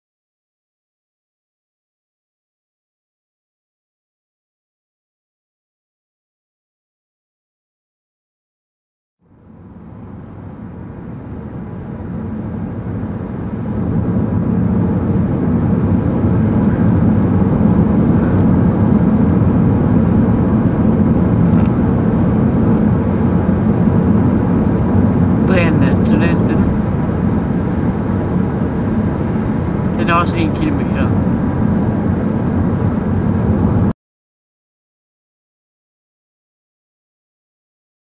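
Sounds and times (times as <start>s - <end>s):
car cabin road rumble: 9.3s - 33.9s.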